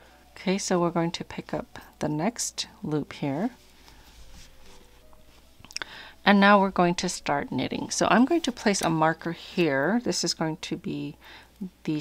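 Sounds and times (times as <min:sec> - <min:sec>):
yarn rustling on knitting needles: 0:03.4 - 0:05.6, 0:06.8 - 0:09.6.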